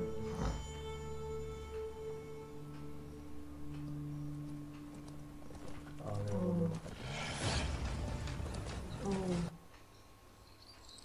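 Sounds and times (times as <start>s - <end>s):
tense film score drone: 0.0s - 9.7s.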